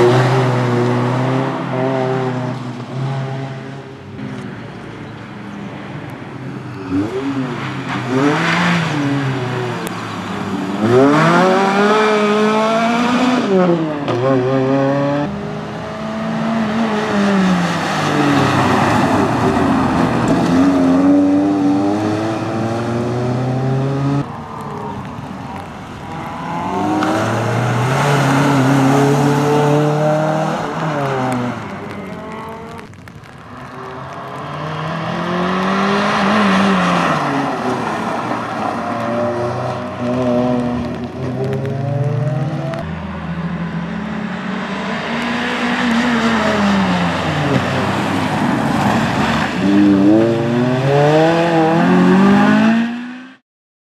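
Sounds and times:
car engine accelerating: 0:25.6 - 0:53.4.

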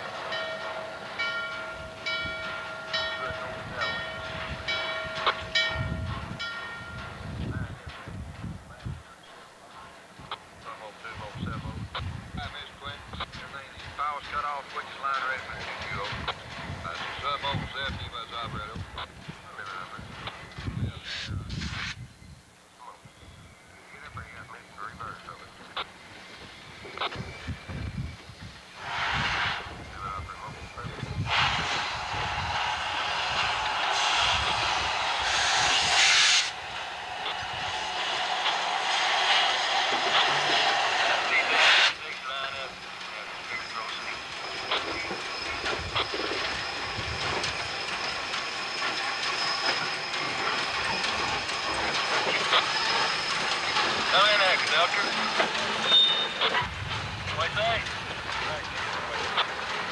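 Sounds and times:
steam locomotive hissing: 0:00.0 - 0:22.1, 0:23.6 - 0:59.9.

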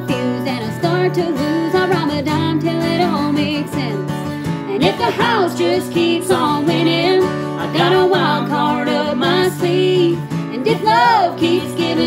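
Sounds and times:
strummed acoustic guitar: 0:00.0 - 0:12.0
man and woman singing: 0:04.6 - 0:12.0.

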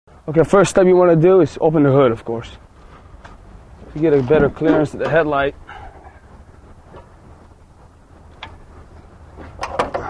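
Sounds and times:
low background rumble: 0:00.1 - 0:10.0
sharp clicks and knocks: 0:08.3 - 0:08.7, 0:09.4 - 0:10.0.

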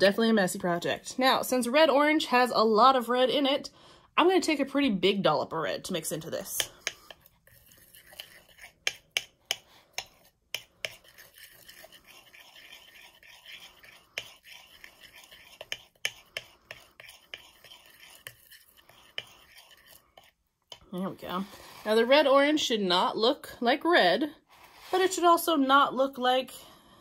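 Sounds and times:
knife scraping on plate: 0:06.6 - 0:20.4.

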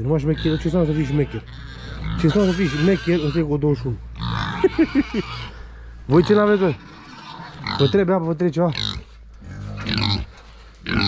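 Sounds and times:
young pigs calling: 0:00.0 - 0:11.0.

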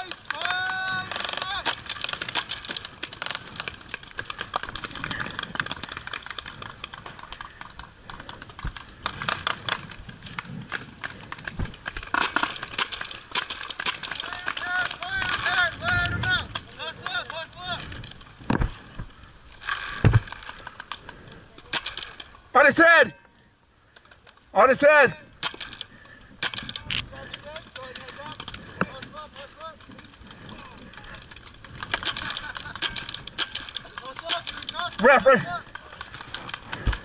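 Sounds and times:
distant players shouting: 0:00.0 - 0:02.2, 0:14.1 - 0:17.9
paintball markers firing: 0:00.0 - 0:17.4, 0:19.9 - 0:22.4, 0:25.4 - 0:37.0.

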